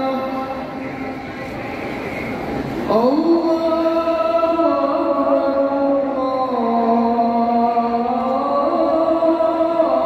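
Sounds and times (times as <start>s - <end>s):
call to prayer singing: 0.0s - 10.0s
hum of large crowd: 0.0s - 10.0s.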